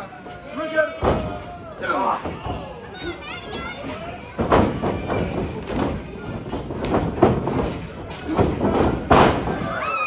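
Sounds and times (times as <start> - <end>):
crowd shouting and chatter: 0.0 - 10.0.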